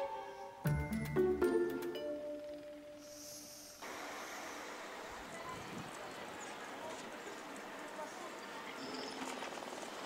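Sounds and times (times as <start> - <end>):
car park and street ambience: 0.0 - 10.0.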